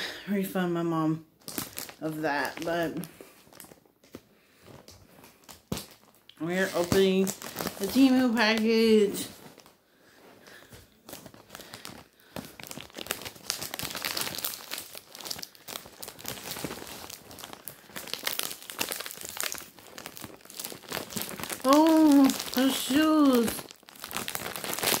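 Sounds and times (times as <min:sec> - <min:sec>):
plastic mailer bag crinkling: 0:01.4 - 0:09.8, 0:10.4 - 0:25.0.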